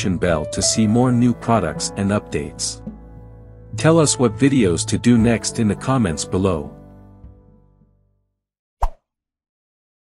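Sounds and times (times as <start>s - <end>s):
outro music: 0.3s - 8.1s.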